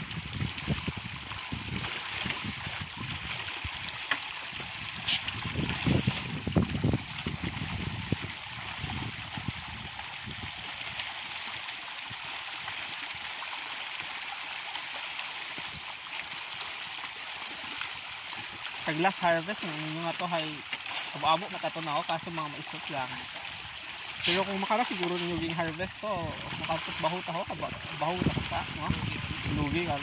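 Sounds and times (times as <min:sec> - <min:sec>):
fish splashing in water: 0:00.0 - 0:18.9, 0:22.6 - 0:30.0.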